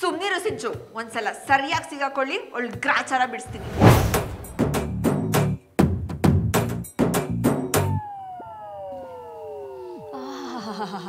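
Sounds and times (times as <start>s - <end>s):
sliding whistle-like tones: 8.0s - 10.2s.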